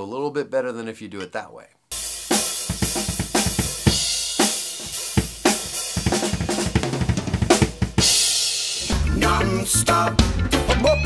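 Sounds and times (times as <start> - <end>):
rock drum groove: 1.9 - 11.0.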